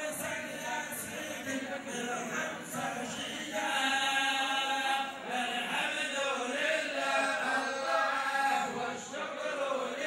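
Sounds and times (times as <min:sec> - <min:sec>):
men chanting devotional song: 0:00.0 - 0:10.0.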